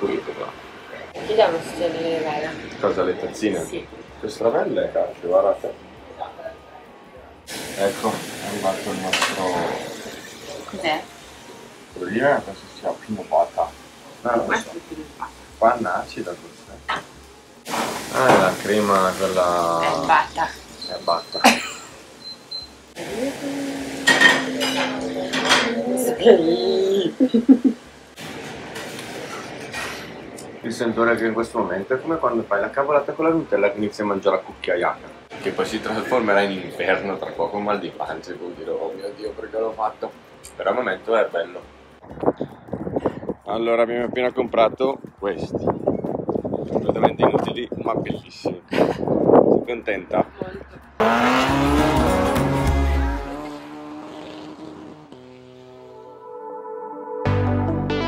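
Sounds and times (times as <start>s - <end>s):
rushing background noise: 0.0s - 53.9s
car engine rising: 50.8s - 56.2s
soft music with held tones: 56.0s - 58.0s.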